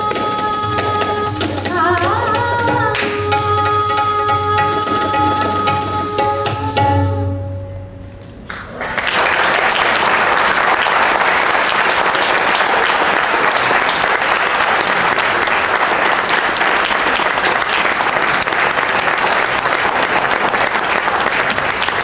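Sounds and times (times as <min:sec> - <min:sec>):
audience applause: 0:08.5 - 0:22.0.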